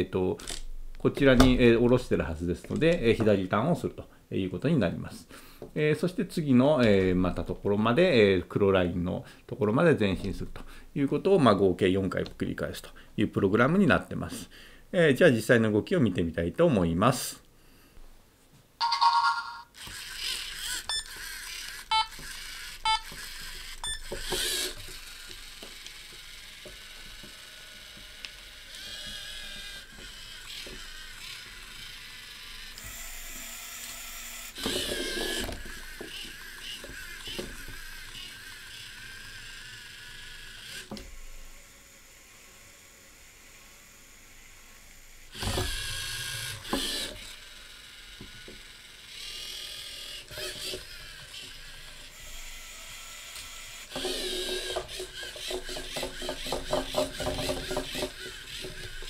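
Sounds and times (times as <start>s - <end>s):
robot motors and gears whirring: 19.8s - 44.2s, 44.8s - 59.0s.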